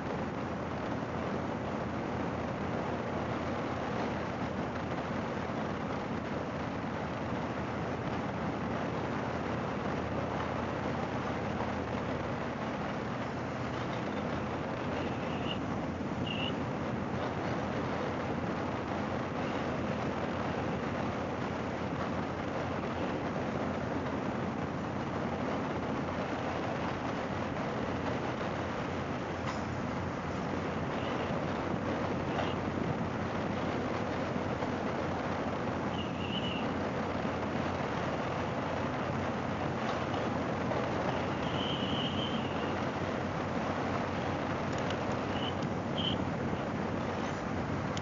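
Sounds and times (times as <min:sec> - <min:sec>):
wind and road noise: 0:00.0 - 0:48.0.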